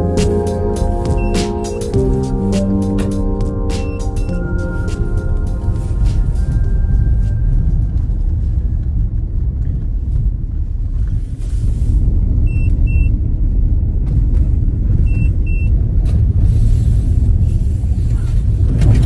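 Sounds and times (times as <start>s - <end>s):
short high beeps: 0.0s - 1.9s.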